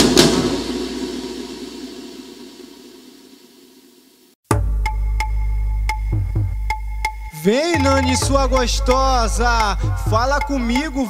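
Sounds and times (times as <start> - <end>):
percussion hit: 0.0 - 3.4, 4.5 - 10.4.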